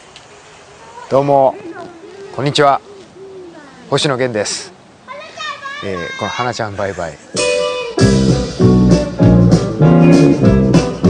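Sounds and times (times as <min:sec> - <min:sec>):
man speaking: 0:03.6 - 0:04.8, 0:05.8 - 0:07.3.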